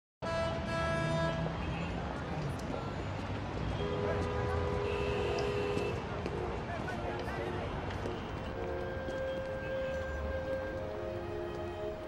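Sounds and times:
city street traffic: 0.2 - 12.0.

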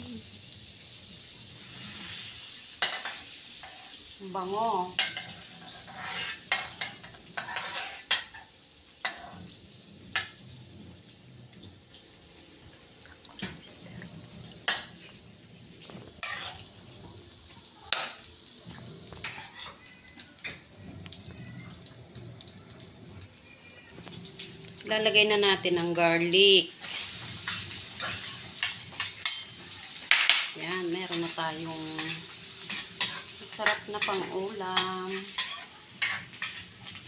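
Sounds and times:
butter sizzling in a wok: 0.0 - 37.0
spatula scraping and tapping pan: 2.8 - 4.0, 5.0 - 9.4, 14.6 - 15.2, 15.8 - 16.7, 19.1 - 21.3, 26.9 - 37.0.

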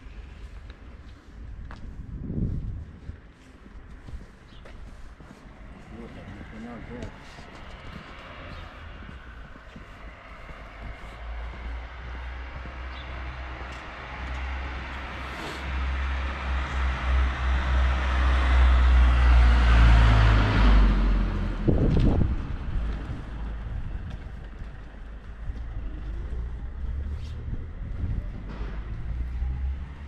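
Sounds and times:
street background noise: 0.0 - 30.0
vehicle passing by: 5.6 - 30.0.

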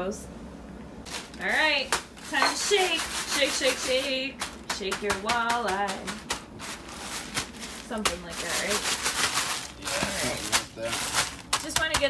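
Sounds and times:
plastic bag rustling and crinkling: 1.1 - 5.0, 5.8 - 12.0.

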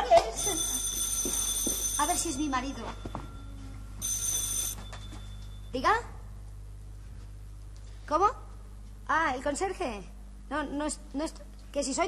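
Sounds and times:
telephone bell ringing: 0.2 - 5.7.

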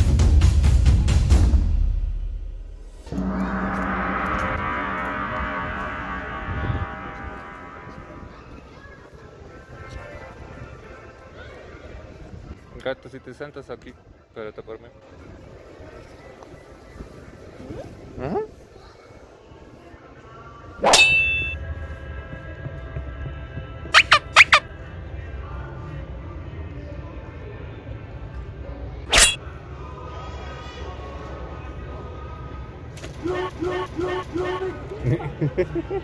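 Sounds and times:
loud metallic clang: 2.9 - 8.5, 20.8 - 21.6, 29.1 - 29.4
gong ringing: 3.1 - 8.8
high squeaks falling in pitch: 24.0 - 24.6.

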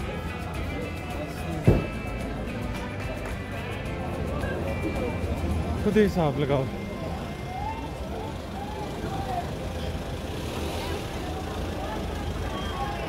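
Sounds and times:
faint distant voices: 0.0 - 13.0
low rumble of traffic: 0.0 - 13.0.

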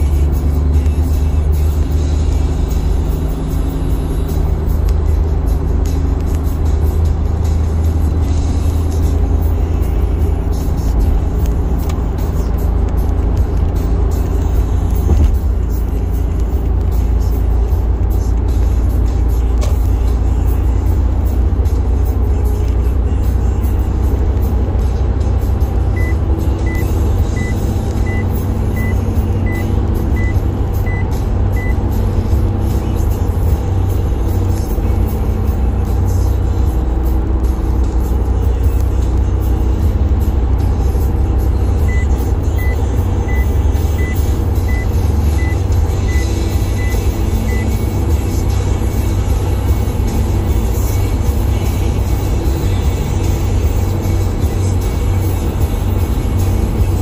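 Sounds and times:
car cabin road rumble: 0.0 - 57.0
music playing: 0.0 - 57.0
short high beeps: 26.0 - 31.8.

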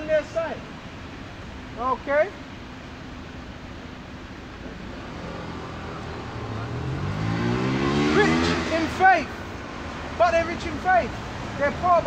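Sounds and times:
traffic hum: 0.0 - 12.0
vehicle engine accelerating: 4.7 - 10.0.

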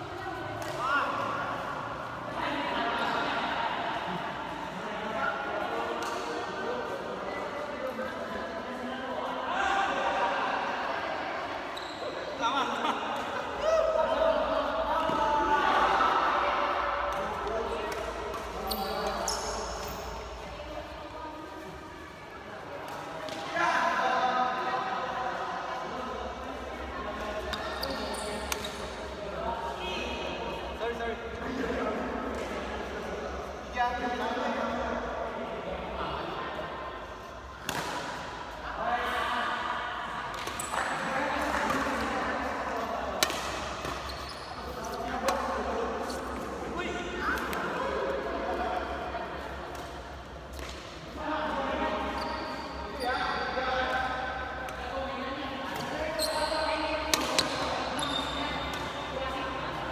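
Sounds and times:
voices in large hall: 0.0 - 59.9
rackets hitting shuttlecock: 37.6 - 38.4, 43.1 - 44.1, 57.1 - 57.7.

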